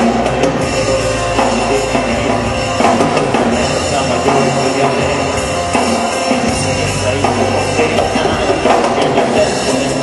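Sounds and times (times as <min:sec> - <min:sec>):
live band playing loudly: 0:00.0 - 0:10.0.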